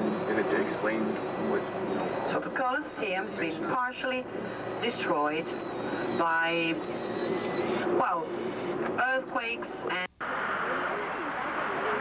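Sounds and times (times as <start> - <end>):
faint high steady tones: 0.0 - 12.0
steady background hum: 0.0 - 12.0.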